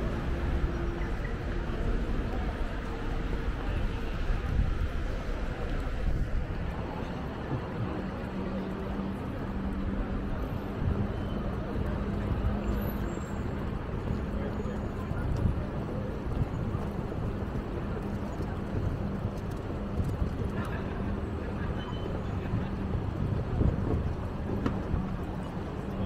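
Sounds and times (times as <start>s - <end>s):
low city hum: 0.0s - 26.0s
traffic: 0.0s - 26.0s.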